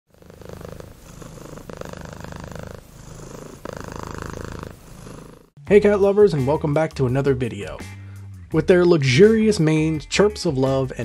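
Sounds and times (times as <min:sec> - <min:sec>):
cat purring: 0:00.1 - 0:05.6.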